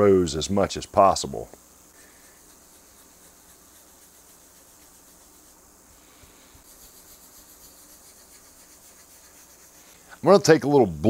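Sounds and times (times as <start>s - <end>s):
cloth rubbing on wood: 2.0s - 10.0s.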